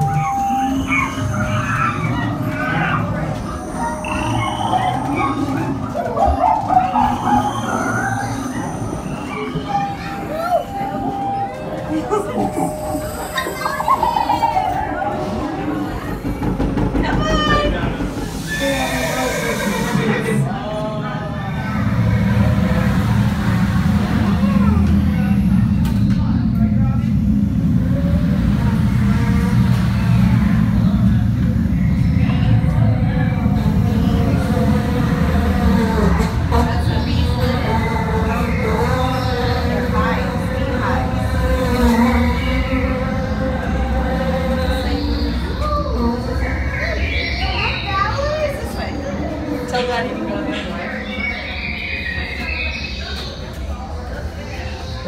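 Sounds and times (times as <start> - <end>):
wavering animal-like calls: 0.0 - 20.6, 27.8 - 55.0
ride rumble: 0.0 - 55.0
voices: 0.0 - 55.0.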